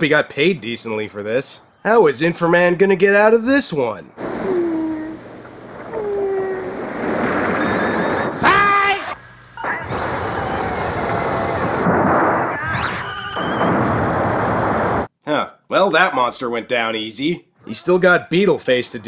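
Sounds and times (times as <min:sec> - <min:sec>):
rumble of explosion-like noise: 0:04.1 - 0:08.5, 0:09.6 - 0:15.1
loud pitched monster cry: 0:05.9 - 0:07.0.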